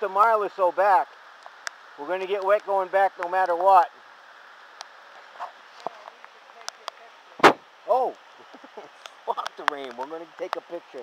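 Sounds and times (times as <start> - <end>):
rain falling on foliage: 0.0 - 11.0
loud thump: 7.4 - 7.6.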